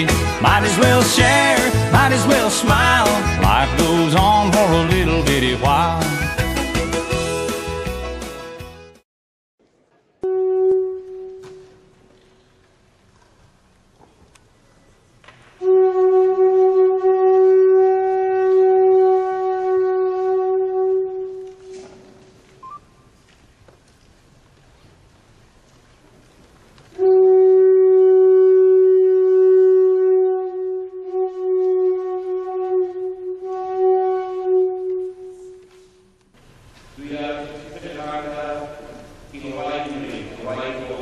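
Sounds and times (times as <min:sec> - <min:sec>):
hand-held horn long note: 0:10.2 - 0:12.5, 0:15.6 - 0:22.2, 0:26.9 - 0:36.2.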